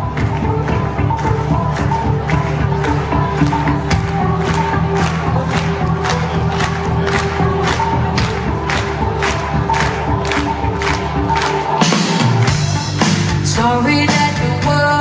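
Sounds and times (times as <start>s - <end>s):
bass line: 0.0s - 15.0s
concert crowd cheering: 0.0s - 15.0s
live band playing: 0.0s - 15.0s.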